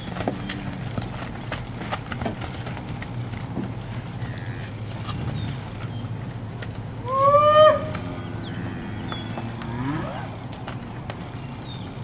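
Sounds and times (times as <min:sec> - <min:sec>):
low cow moo: 0:00.2 - 0:00.8, 0:07.0 - 0:10.4
steer bawling: 0:07.0 - 0:10.4.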